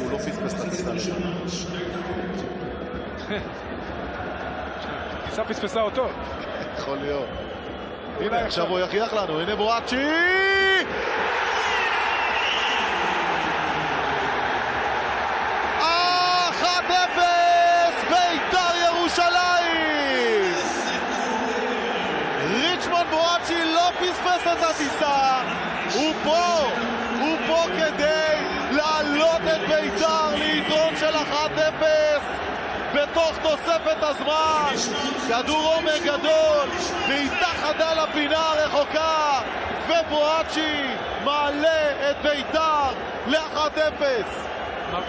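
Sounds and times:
stadium crowd cheering: 0.0 - 45.0
man commentating: 15.7 - 45.0.

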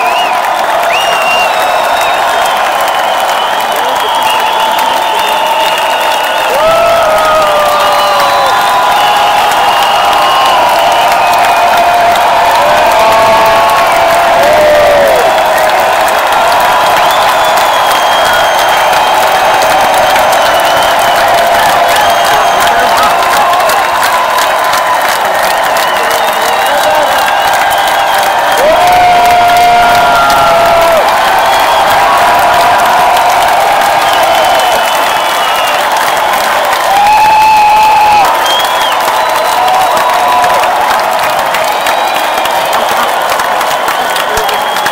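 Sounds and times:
crowd clapping: 0.0 - 44.9
crowd screams and shouts: 0.0 - 44.9.

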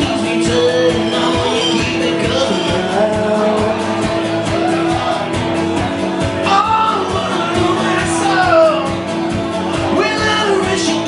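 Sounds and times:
man singing: 0.0 - 9.1, 9.7 - 11.0
acoustic guitar strumming: 0.0 - 11.0.

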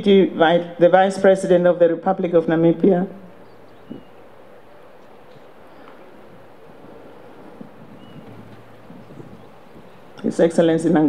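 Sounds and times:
low outdoor rumble: 0.0 - 11.0
faint high chirp: 3.4 - 4.3.

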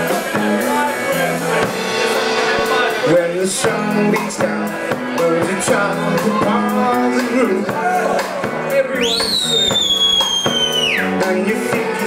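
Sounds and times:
live rock band playing: 0.0 - 12.0
loud high whistle: 9.0 - 11.1.

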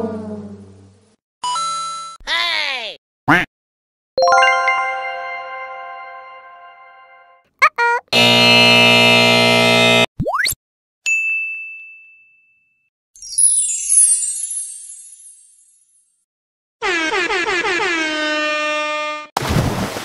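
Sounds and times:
loud steady buzzing tone: 8.1 - 10.1
bell-like ding: 11.1 - 12.9.

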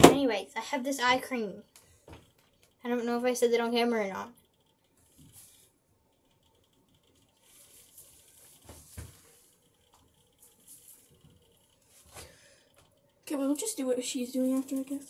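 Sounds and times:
person speaking: 2.7 - 4.4, 13.2 - 15.0.

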